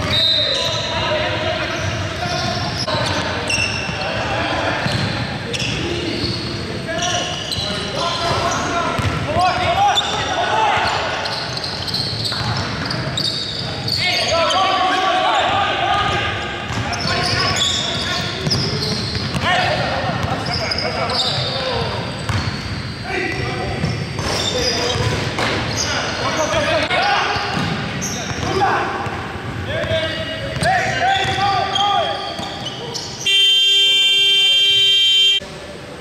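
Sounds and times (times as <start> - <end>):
players' voices: 0.0 - 35.8
basketball bouncing: 9.0 - 9.7
scoreboard buzzer: 33.3 - 35.4.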